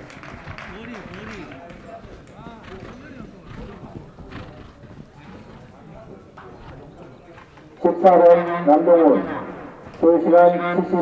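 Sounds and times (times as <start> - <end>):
horse hoofbeats: 0.0 - 11.0
spectators chattering: 0.0 - 11.0.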